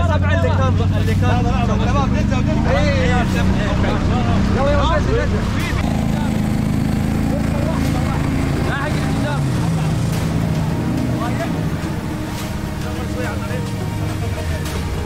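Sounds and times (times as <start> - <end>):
engine running at low speed: 0.0 - 15.0.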